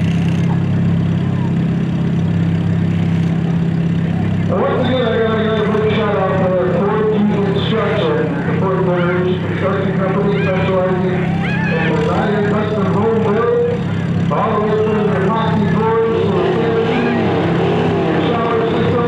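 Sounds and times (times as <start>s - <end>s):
race car engines idling: 0.0s - 19.0s
indistinct voices: 5.5s - 19.0s.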